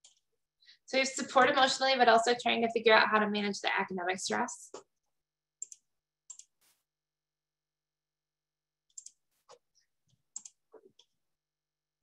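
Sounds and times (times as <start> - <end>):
computer mouse clicks: 5.6 - 6.6, 8.9 - 9.6, 10.3 - 11.2.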